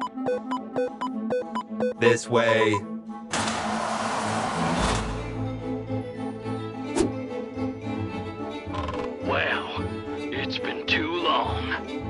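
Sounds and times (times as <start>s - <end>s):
background music: 0.0s - 12.0s
vault door rushing noise: 3.3s - 5.4s.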